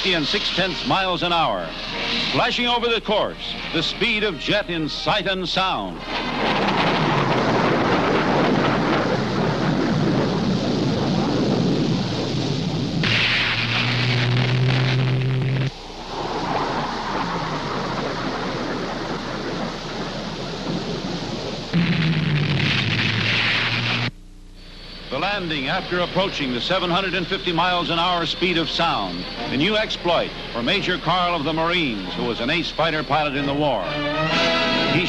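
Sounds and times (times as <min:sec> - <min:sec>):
steady hum with hiss: 0:00.0 - 0:35.0
jet aircraft roaring past: 0:05.8 - 0:24.1, 0:25.1 - 0:35.0.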